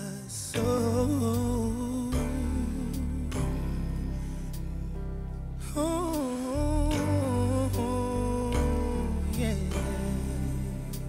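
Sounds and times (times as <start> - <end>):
person singing wordless held notes: 0.0 - 3.6
soft slow accompaniment with bass: 0.0 - 11.0.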